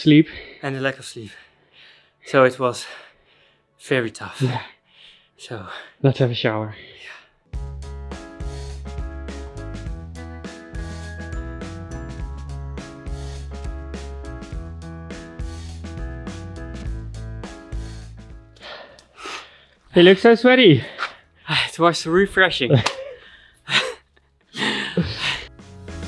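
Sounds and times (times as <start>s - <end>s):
music with bass and beat: 7.6s - 18.6s.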